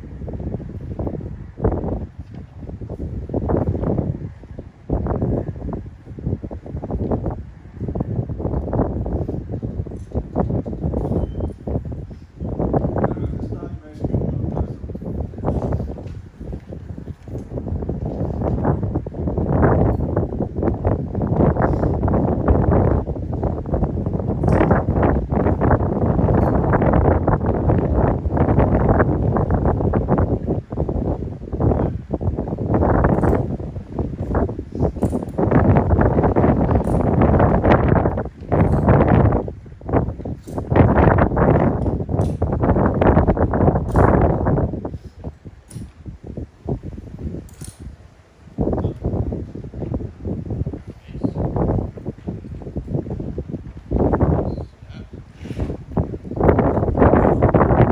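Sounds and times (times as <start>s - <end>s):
wind gusting on microphone: 0.0s - 57.9s.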